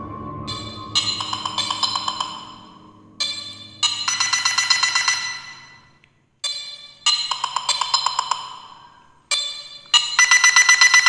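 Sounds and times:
smartphone ringtone melody: 0:00.5 - 0:06.0, 0:10.0 - 0:11.0.

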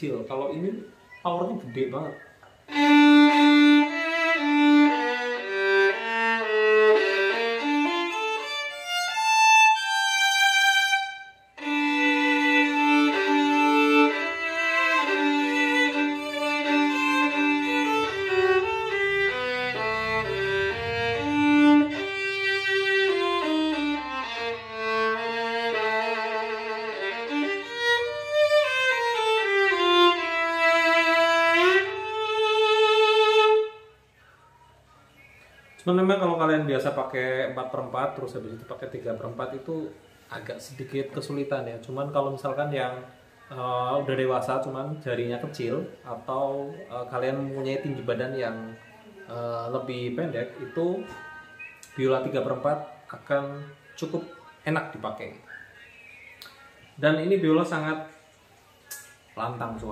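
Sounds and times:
solo violin played with bow: 0:02.7 - 0:34.0.

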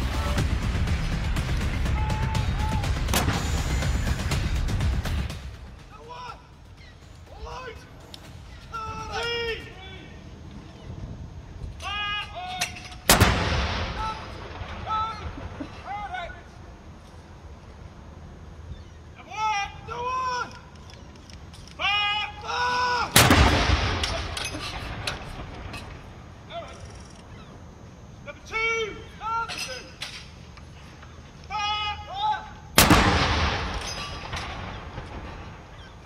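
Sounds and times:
gun blast with echo: 0:00.0 - 0:05.7, 0:13.1 - 0:14.8, 0:23.2 - 0:25.5, 0:32.8 - 0:35.8
gun firing blank round: 0:13.1 - 0:14.0, 0:23.2 - 0:25.4, 0:32.8 - 0:35.3.

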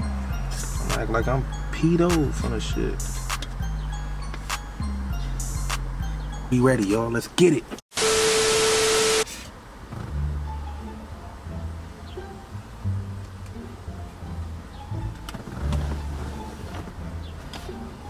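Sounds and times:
music with deep bass line: 0:00.0 - 0:06.8, 0:09.9 - 0:18.0
tv static: 0:07.9 - 0:09.3.

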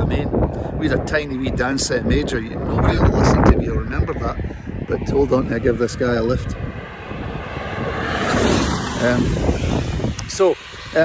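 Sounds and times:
vehicle passing close by: 0:02.8 - 0:11.0.

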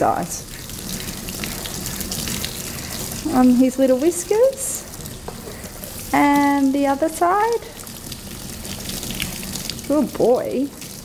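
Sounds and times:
shower sprayer water spraying: 0:00.0 - 0:11.0
water draining into tub: 0:00.0 - 0:11.0.

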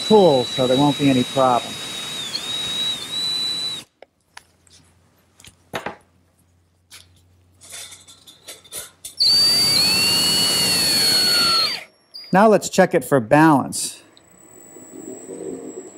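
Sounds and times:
power drill whining: 0:00.0 - 0:03.9, 0:09.2 - 0:11.9.

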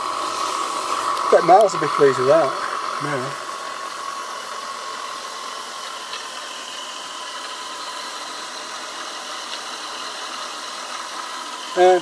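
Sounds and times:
steam turbine hissing: 0:00.0 - 0:12.0.

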